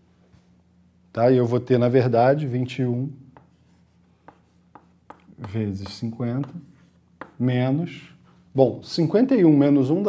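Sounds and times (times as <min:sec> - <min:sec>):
chalk tapping and scraping: 0:03.3 - 0:07.6.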